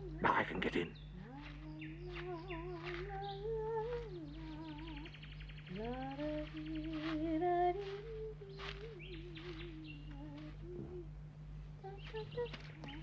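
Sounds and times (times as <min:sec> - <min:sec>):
man humming: 0:00.0 - 0:01.6, 0:09.7 - 0:11.1.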